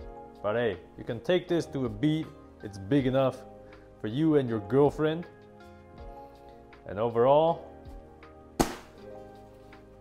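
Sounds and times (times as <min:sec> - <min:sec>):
background music: 0:00.0 - 0:10.0
umbrella frame snapping shut: 0:08.6 - 0:09.0.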